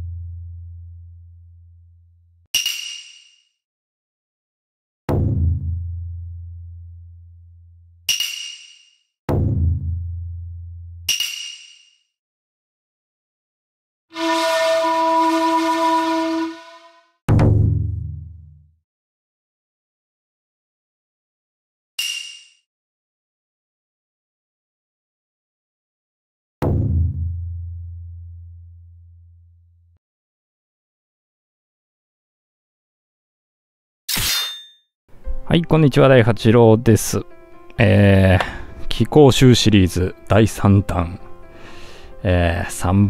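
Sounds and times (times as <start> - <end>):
sharp metallic clang: 2.6 - 3.4, 8.1 - 9.0, 11.1 - 12.0, 22.0 - 22.6
sustained horn blast: 14.1 - 17.2.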